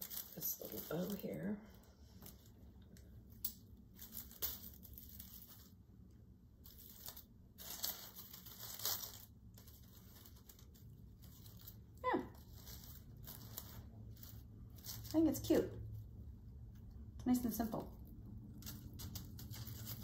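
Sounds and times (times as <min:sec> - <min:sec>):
twigs and netting rustling: 0:00.0 - 0:16.9, 0:17.6 - 0:20.0.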